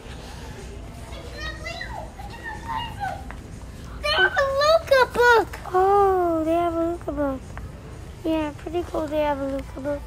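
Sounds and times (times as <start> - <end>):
children's voices: 0.7 - 7.4.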